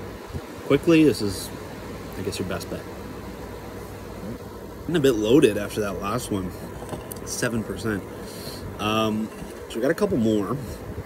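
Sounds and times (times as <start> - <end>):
man speaking: 7.2 - 10.6.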